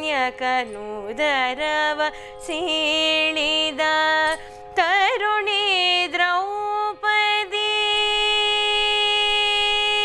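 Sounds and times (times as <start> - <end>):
woman singing a long held note: 0.4 - 10.0.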